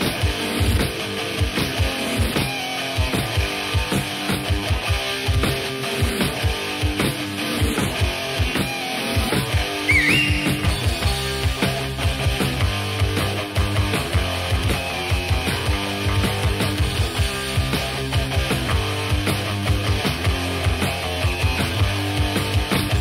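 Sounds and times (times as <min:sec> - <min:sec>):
electric guitars: 0:00.0 - 0:23.0
drum kit steady beat: 0:09.3 - 0:20.8
high note sliding upward: 0:09.9 - 0:11.0.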